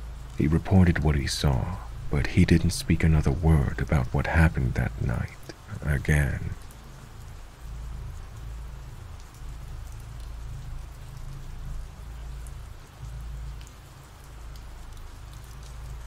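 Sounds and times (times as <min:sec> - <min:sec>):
rain falling: 0:00.0 - 0:16.0.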